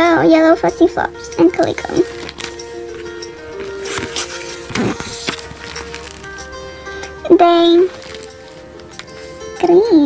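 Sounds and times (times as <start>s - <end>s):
soft background music: 0.0s - 10.0s
page turning rustle: 1.9s - 6.6s, 7.6s - 9.3s.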